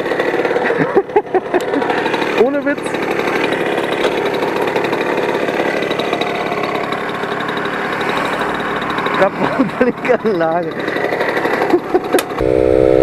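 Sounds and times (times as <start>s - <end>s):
moped engine idling: 0.0s - 13.0s.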